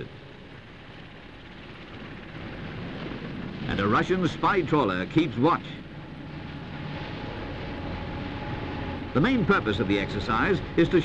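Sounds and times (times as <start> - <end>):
engine rumble: 0.0 - 11.0
faint thin whine: 0.0 - 11.0.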